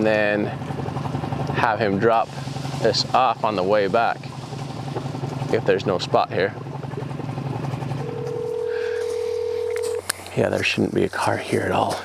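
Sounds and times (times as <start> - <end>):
low engine hum: 0.0 - 12.0
phone ringback tone: 8.0 - 10.0.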